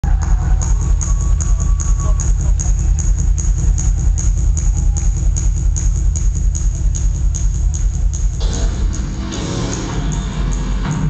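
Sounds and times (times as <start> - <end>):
electronic dance music: 0.0 - 11.0
throbbing bass pulse: 0.0 - 11.0.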